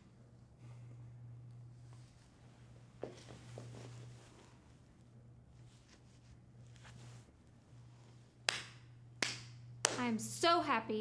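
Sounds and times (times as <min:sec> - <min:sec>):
slow hand claps: 0:08.5 - 0:10.1.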